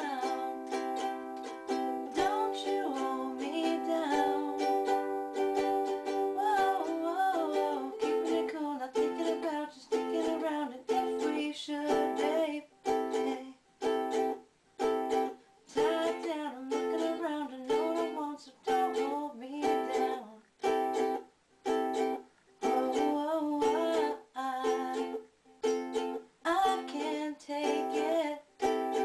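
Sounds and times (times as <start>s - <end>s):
ukulele strumming chords: 0.0s - 29.0s.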